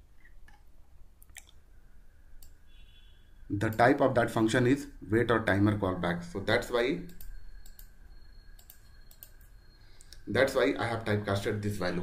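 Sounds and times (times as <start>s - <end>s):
computer mouse clicks: 7.1s - 7.9s, 8.6s - 10.2s.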